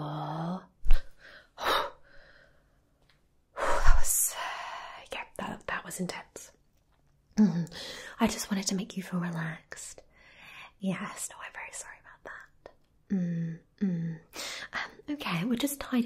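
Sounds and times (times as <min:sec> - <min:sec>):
woman breathing and gasping: 0:07.5 - 0:08.2.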